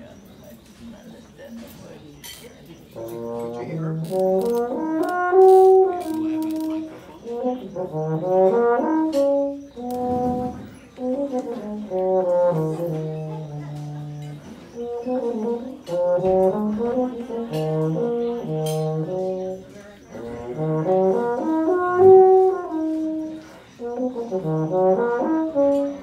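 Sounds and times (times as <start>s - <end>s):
brass ensemble playing a mazurka: 3.0s - 26.0s.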